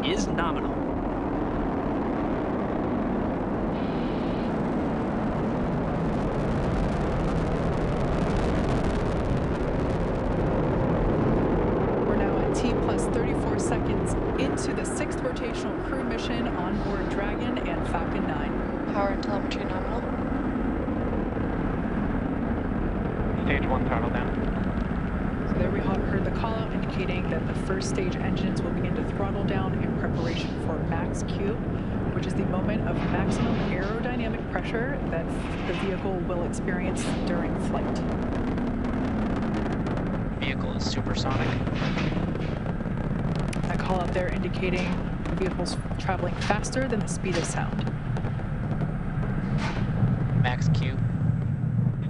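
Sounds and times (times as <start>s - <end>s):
crackling rocket noise: 0.0s - 52.0s
rocket engines roaring: 0.0s - 52.0s.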